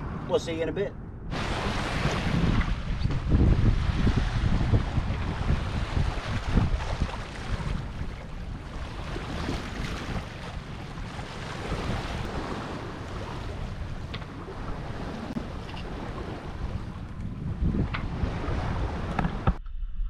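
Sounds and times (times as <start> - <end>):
wind buffeting microphone: 0.0 - 20.0
choppy water slapping hull: 1.3 - 19.6.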